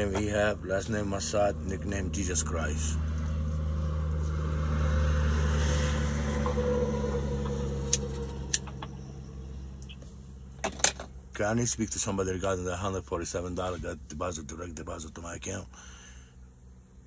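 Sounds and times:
vehicle engine humming: 0.0s - 17.0s.

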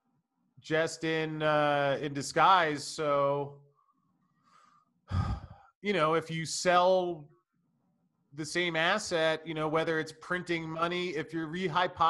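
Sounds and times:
man speaking: 0.7s - 3.5s, 5.1s - 7.2s, 8.4s - 12.0s
man breathing into microphone: 4.4s - 5.7s.

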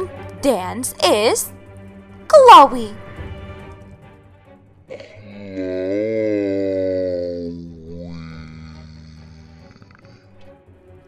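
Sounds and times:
steady low drone: 3.0s - 10.6s.

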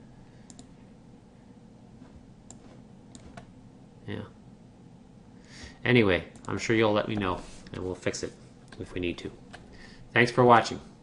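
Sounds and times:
low room hiss: 0.0s - 11.0s
computer mouse clicks: 0.4s - 0.7s, 2.4s - 3.5s.

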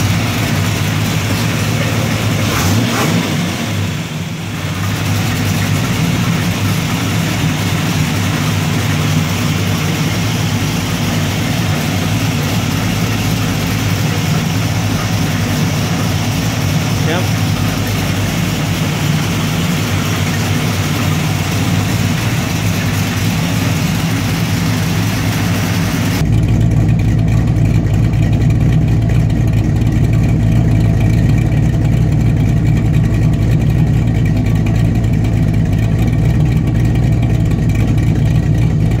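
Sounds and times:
engine running steadily: 0.0s - 39.0s.

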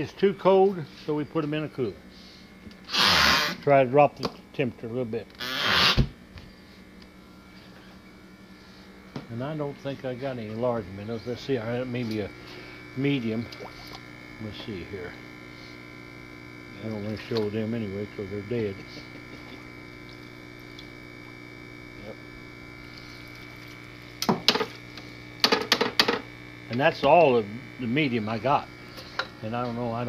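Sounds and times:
low steady hum: 0.0s - 30.0s
faint water noise: 13.4s - 14.2s.

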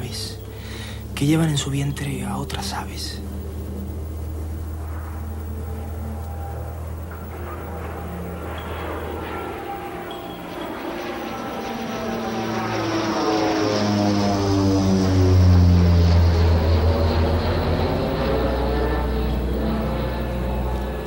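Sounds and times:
airplane engine drone passing: 0.0s - 21.0s.

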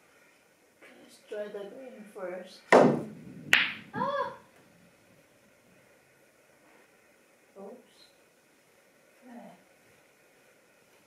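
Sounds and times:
pool balls clacking: 2.8s - 4.1s
person exclaiming: 3.9s - 4.4s.

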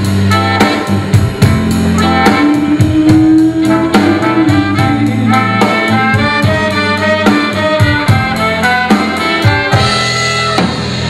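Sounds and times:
bass guitar: 0.0s - 11.0s
horn section playing: 0.0s - 11.0s
keyboard: 0.0s - 11.0s
steady drum beat: 0.0s - 11.0s.

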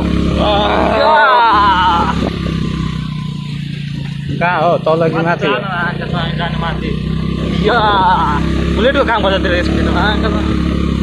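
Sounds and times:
motorcycle engine running: 0.0s - 11.0s
people talking: 0.4s - 2.3s, 4.3s - 10.6s.

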